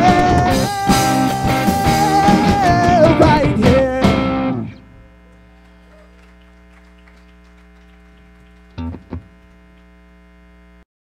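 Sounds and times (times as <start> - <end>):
amplifier electrical hum: 3.8 - 10.9.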